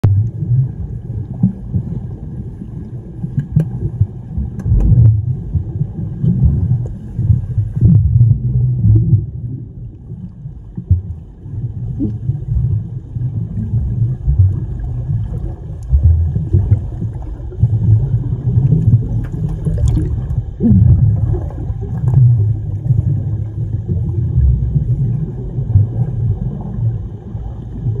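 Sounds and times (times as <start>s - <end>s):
muffled underwater churning: 0.0s - 28.0s.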